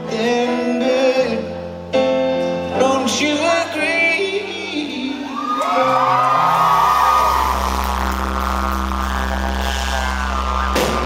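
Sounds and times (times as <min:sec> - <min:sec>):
live band playing amplified music: 0:00.0 - 0:11.0
deep bass note: 0:06.5 - 0:11.0.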